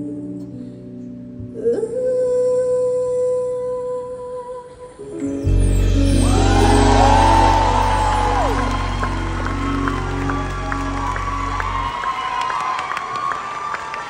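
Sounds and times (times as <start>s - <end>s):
live band held chord: 5.4s - 12.2s
audience cheering and whooping: 6.1s - 14.0s
crowd clapping: 6.2s - 14.0s.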